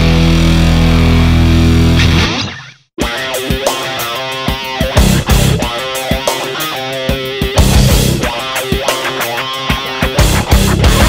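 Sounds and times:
heavy rock guitar chord ringing: 0:00.0 - 0:11.0.

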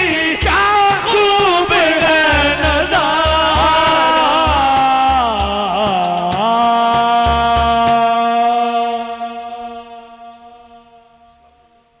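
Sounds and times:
sustained musical tone: 0:02.6 - 0:06.1.

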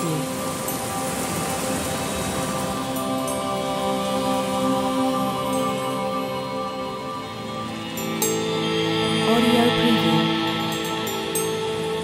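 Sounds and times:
heavy rain: 0:00.0 - 0:12.0
slow sad background music: 0:00.0 - 0:12.0.

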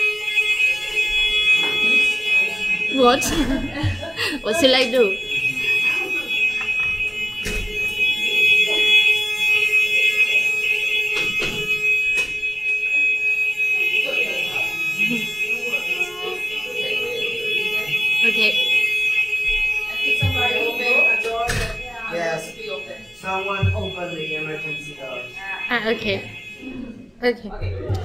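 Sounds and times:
high-pitched alarm tone: 0:00.0 - 0:28.0.

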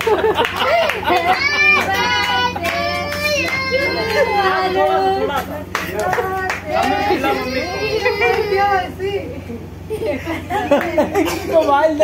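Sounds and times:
hand claps: 0:00.0 - 0:04.3, 0:05.3 - 0:07.0
people talking: 0:00.0 - 0:12.0.

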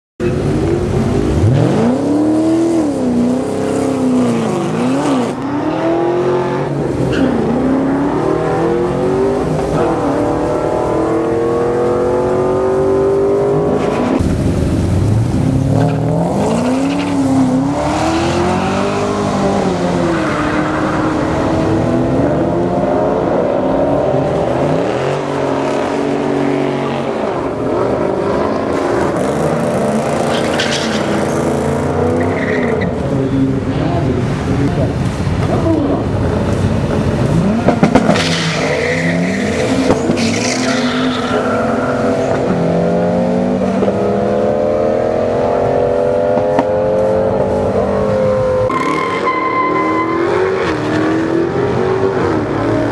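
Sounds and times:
car engines revving: 0:00.2 - 0:52.9.

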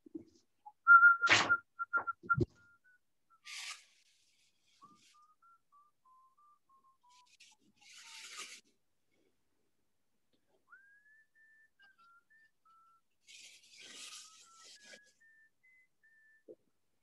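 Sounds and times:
person whistling softly: 0:00.7 - 0:03.5, 0:04.6 - 0:08.2, 0:10.4 - 0:16.6
rustling: 0:03.4 - 0:05.2, 0:07.0 - 0:08.8, 0:13.2 - 0:15.1.

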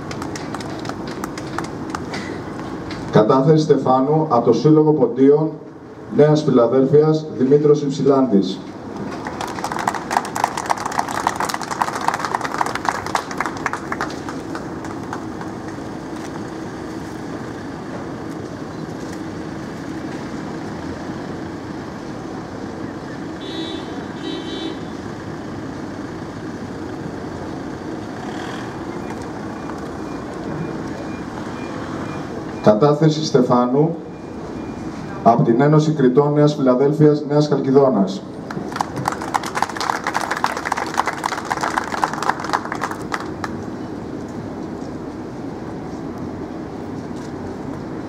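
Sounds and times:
street traffic noise: 0:00.0 - 0:48.0.

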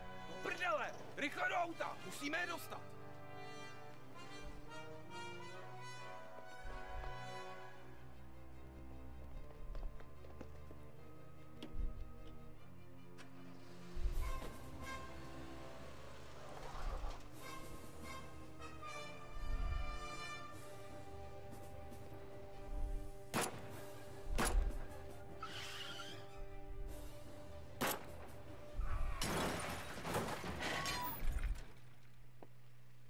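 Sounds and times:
dramatic orchestral music: 0:00.0 - 0:30.6
glass shattering: 0:29.2 - 0:31.3.

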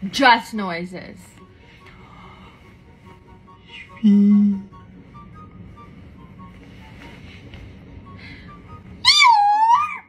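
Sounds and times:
faint background music: 0:00.0 - 0:10.0
low steady rumble: 0:00.0 - 0:10.0.

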